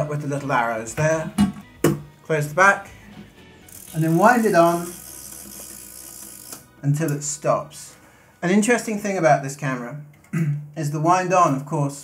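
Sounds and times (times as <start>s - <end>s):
camera crank winding whirr: 3.6s - 6.7s.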